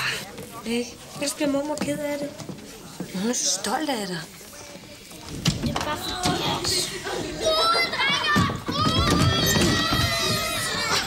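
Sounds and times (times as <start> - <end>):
children talking excitedly: 0.0 - 11.0.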